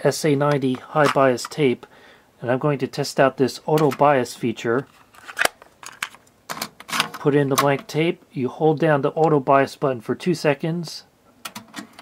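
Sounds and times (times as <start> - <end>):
plastic cassette clicks: 5.2 - 6.2.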